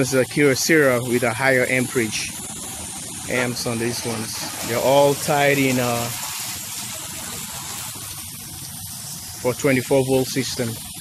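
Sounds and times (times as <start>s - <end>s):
water jet spraying on glass: 0.0s - 11.0s.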